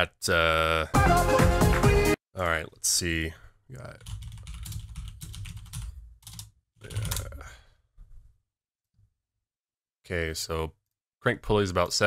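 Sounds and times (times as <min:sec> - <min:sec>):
typing on computer keyboard: 0:04.0 - 0:07.3.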